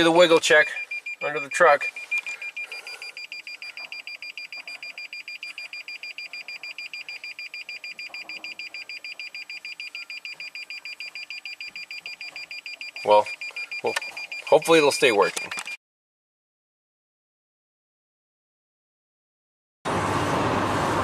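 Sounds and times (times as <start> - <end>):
rapid parking sensor beeps: 0.0 - 15.8.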